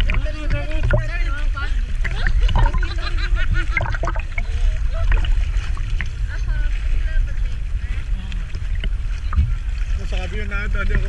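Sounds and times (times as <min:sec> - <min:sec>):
low microphone rumble: 0:00.0 - 0:11.0
sea water sloshing and splashing: 0:00.0 - 0:11.0.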